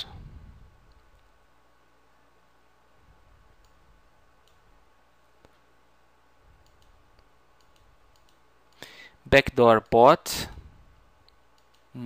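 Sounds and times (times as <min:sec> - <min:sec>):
computer mouse clicks: 0:03.6 - 0:03.8, 0:04.4 - 0:04.7, 0:06.6 - 0:08.9, 0:11.2 - 0:11.9.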